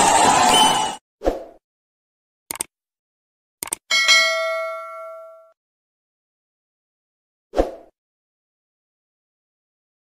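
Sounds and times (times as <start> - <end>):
notification bell ding: 3.9 - 5.6.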